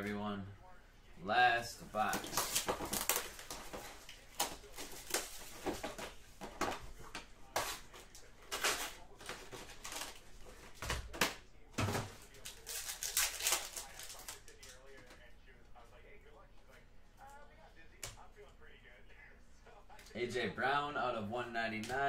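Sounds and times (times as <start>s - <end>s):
rustling and crinkling of packs: 1.9s - 11.2s, 11.8s - 15.0s.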